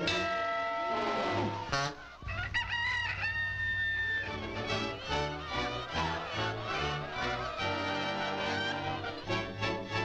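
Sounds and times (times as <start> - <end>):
cartoon rooster crowing: 1.4 - 4.4.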